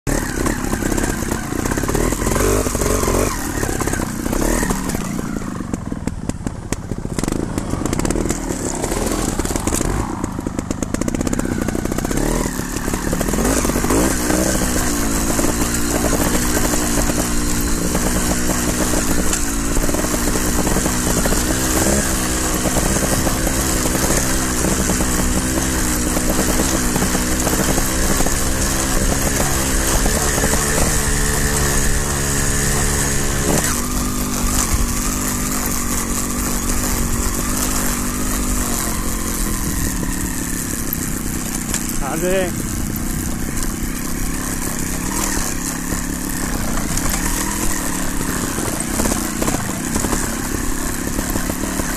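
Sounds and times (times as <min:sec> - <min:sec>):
motorcycle engine revving: 0:00.0 - 0:51.9.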